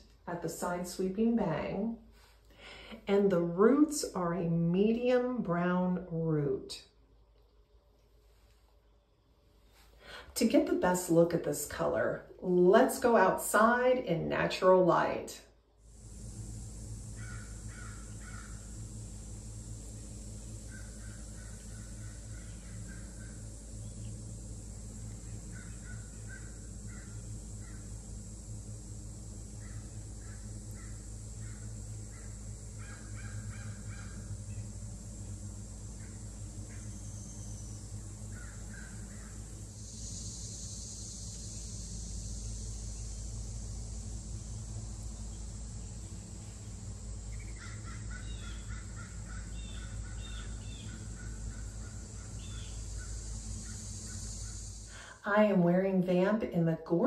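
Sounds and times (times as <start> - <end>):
steady high-pitched hiss: 0.0 - 57.0
crows cawing: 17.2 - 18.6, 29.6 - 34.2, 38.3 - 39.3, 47.6 - 52.3.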